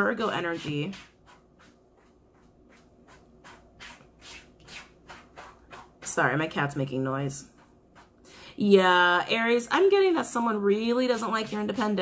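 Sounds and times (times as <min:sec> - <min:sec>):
faint rustling strokes: 0:00.0 - 0:08.6.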